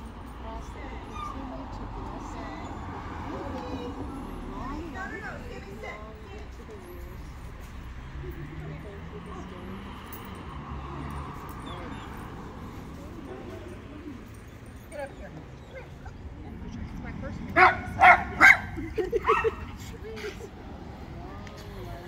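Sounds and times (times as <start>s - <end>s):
dog yipping: 1.0s - 1.5s, 17.6s - 19.6s
dog barking: 17.6s - 19.7s.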